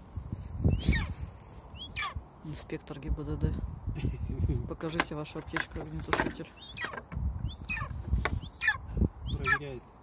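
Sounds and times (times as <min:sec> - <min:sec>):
eagle high falling calls: 0:00.7 - 0:02.2, 0:06.5 - 0:09.7.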